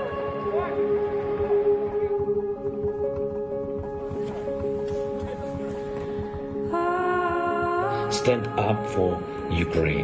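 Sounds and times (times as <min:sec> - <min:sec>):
soft low pulse: 0:00.0 - 0:07.9.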